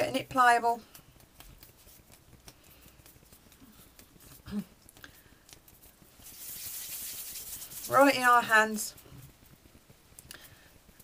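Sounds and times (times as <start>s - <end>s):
palms rubbing together hiss: 0.2s - 11.0s
fingers kneading paste ticks: 0.8s - 6.1s.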